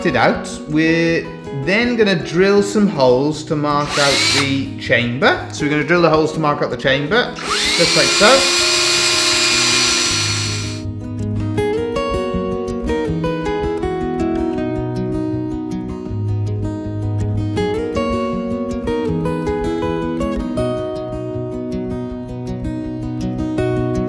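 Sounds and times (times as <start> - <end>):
power drill whining into wood: 3.8 - 4.7, 7.4 - 10.8.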